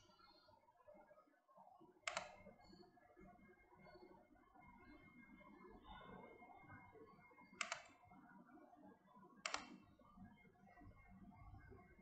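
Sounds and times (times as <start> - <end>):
computer mouse button click: 2.1 - 2.4, 7.6 - 7.9, 9.4 - 9.8.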